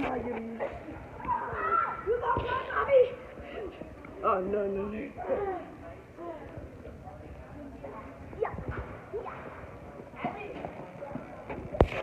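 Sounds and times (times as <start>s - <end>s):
children calling and shouting: 0.0s - 11.7s.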